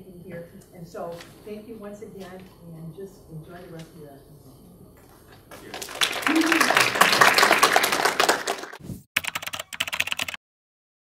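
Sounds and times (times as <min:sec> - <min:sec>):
audience clapping: 0:05.4 - 0:08.8.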